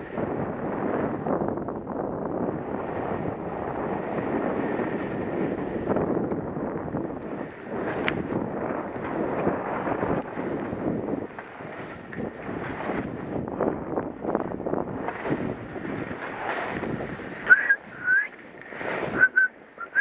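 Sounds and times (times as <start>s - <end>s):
wind rushing over microphone: 0.0s - 20.0s
skis scraping over snow: 7.2s - 13.6s, 14.2s - 17.3s
brief high squeal: 17.5s - 18.3s.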